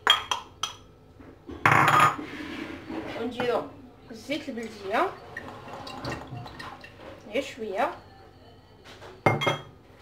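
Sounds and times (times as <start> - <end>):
ceramic bowl clattering on stone: 1.6 - 2.2, 9.2 - 9.7.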